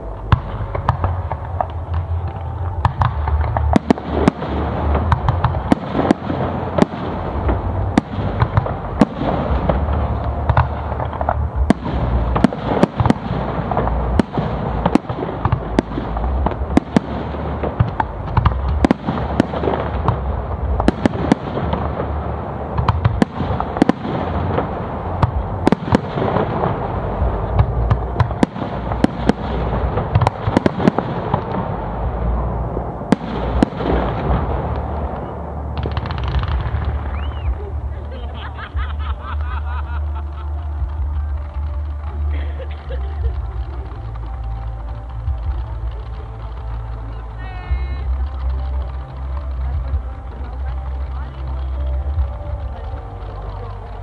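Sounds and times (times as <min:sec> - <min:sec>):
fireworks bangs: 0:00.0 - 0:54.0
low rumble: 0:00.0 - 0:54.0.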